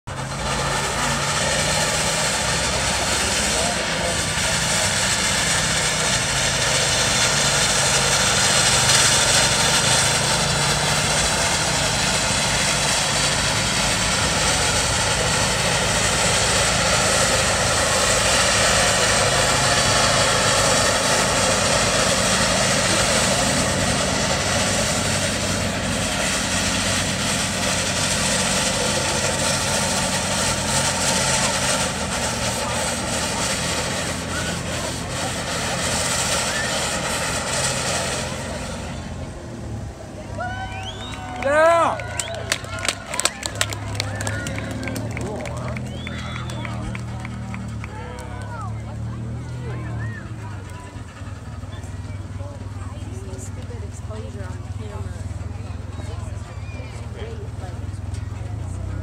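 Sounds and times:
steam engine exhaust: 0.1 - 59.0
voices: 0.1 - 59.0.

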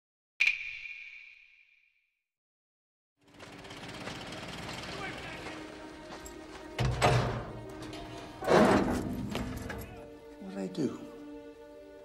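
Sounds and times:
faint film score: 3.2 - 12.0.

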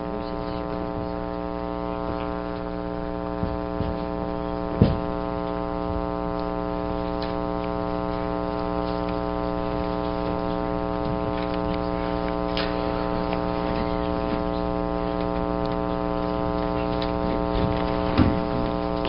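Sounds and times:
electrical mains hum: 0.0 - 19.0
thump: 4.8 - 5.1
faint clicks: 6.3 - 9.4.

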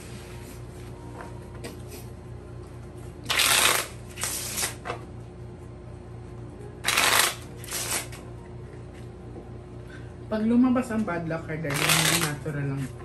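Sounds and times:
cards being shuffled: 3.2 - 5.0, 6.8 - 8.2, 11.7 - 13.0.

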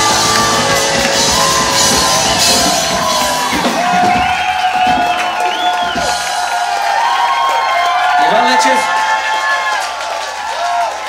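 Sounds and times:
live rock band playing: 0.0 - 6.4
cymbals crashing: 0.0 - 6.8
audience cheering and whooping: 0.0 - 11.0.

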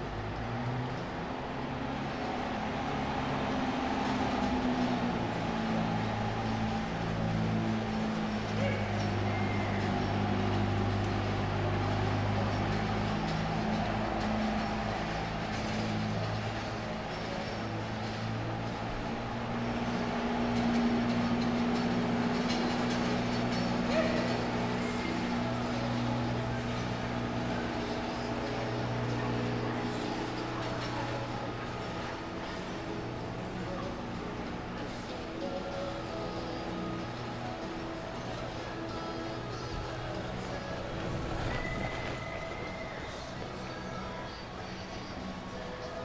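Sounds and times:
low machine hum: 0.0 - 46.0.

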